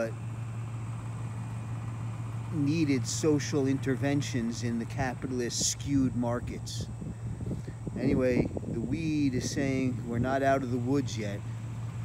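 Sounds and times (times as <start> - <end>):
low mechanical hum: 0.0 - 12.0.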